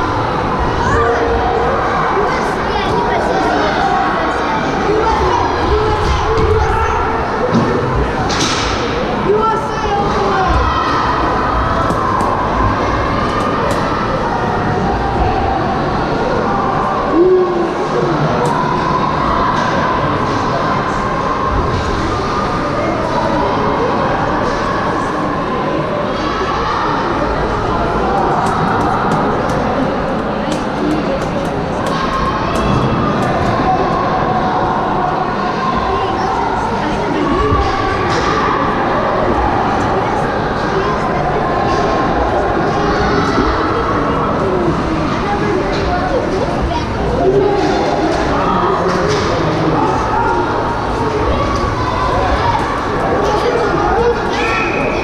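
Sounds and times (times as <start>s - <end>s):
crowd and players' voices: 0.0s - 55.0s.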